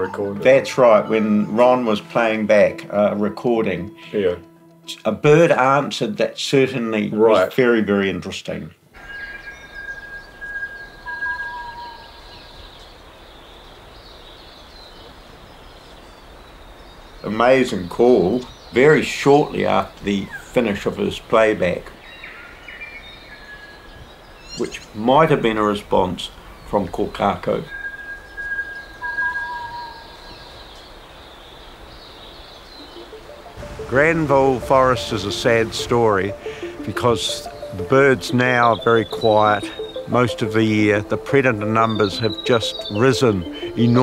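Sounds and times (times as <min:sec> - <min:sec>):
forest hiss: 0:08.9 - 0:29.1, 0:29.8 - 0:44.0
bird whistling long note: 0:09.0 - 0:12.6, 0:27.7 - 0:30.2, 0:32.8 - 0:44.0
steady high-pitched background: 0:32.8 - 0:44.0.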